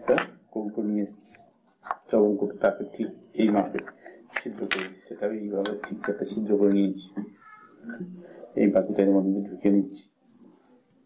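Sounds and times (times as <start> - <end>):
man talking: 0.0 - 7.2, 8.4 - 10.1.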